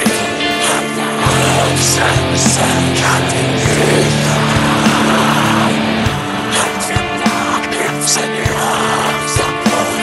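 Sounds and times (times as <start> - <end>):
distorted electric guitar chord: 1.0 - 8.6
dense noisy wash: 1.8 - 7.8.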